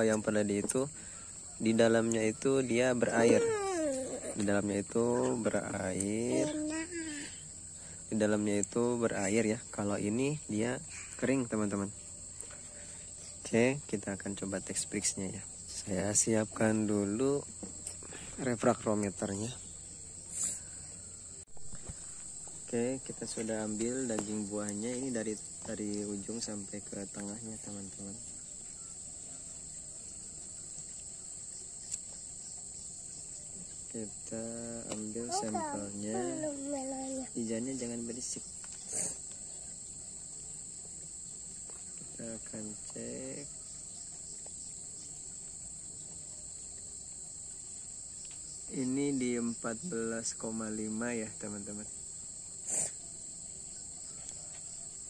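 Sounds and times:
insects droning: 0:00.0 - 0:55.0
rustle: 0:00.0 - 0:55.0.

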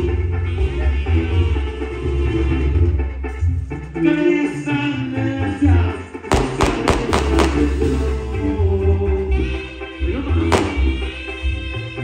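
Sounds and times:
latin dance music: 0:00.0 - 0:12.0
sharp percussive hits: 0:06.3 - 0:07.8, 0:10.6 - 0:11.0.

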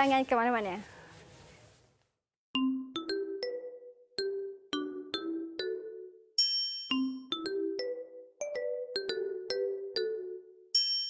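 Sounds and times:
bell-like jingle notes: 0:02.6 - 0:11.0.

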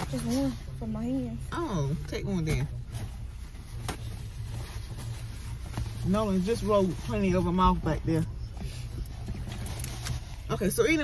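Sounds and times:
car engine idling hum: 0:00.0 - 0:11.0.

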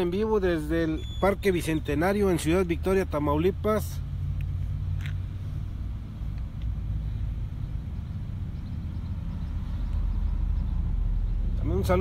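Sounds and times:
steady low rumble: 0:02.4 - 0:12.0.

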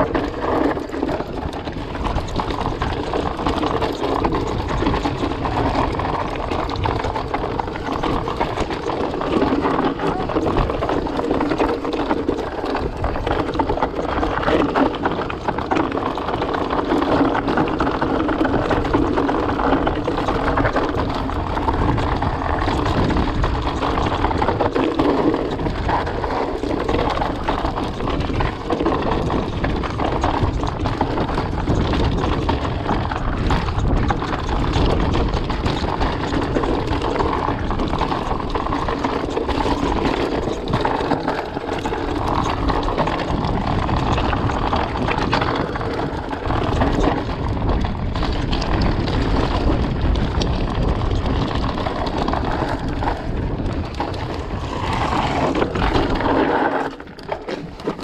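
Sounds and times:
bike rattling and knocking: 0:00.0 - 0:58.0
tyres rolling on rock and gravel: 0:00.0 - 0:58.0
wind buffeting microphone: 0:00.0 - 0:58.0.

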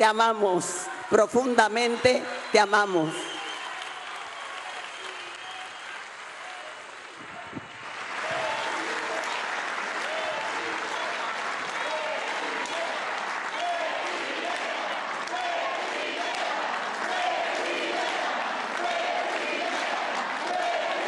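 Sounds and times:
crowd applause: 0:01.4 - 0:21.0.

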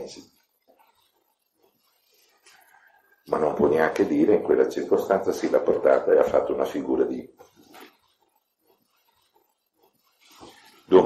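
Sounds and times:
man talking: 0:00.0 - 0:00.3, 0:03.3 - 0:07.4.

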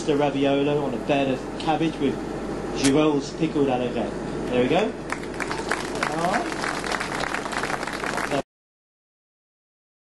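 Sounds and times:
audience applauding: 0:05.1 - 0:08.5.

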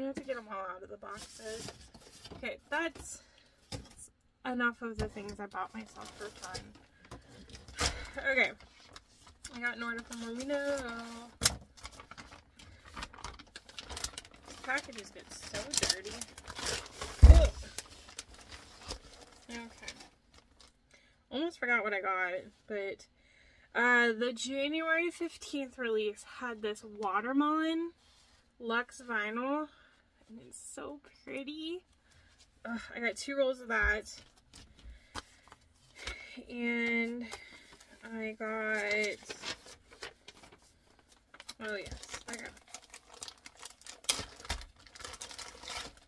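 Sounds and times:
plastic package clicks and rustles: 0:05.3 - 0:20.8, 0:38.6 - 0:46.0.

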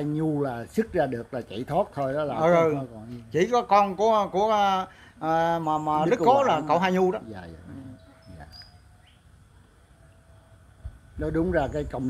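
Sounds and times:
low background hum: 0:00.0 - 0:12.0
faint bird chirps: 0:04.6 - 0:12.0.

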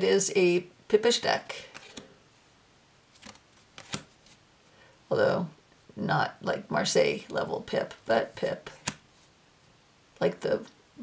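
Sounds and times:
cards flicking and snapping: 0:03.2 - 0:04.3.

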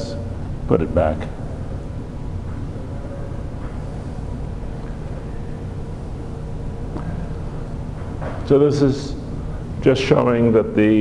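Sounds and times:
room background hum: 0:00.0 - 0:11.0.

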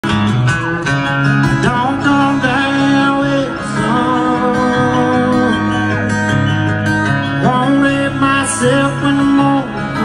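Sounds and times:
live country band with guitars: 0:00.0 - 0:10.0.

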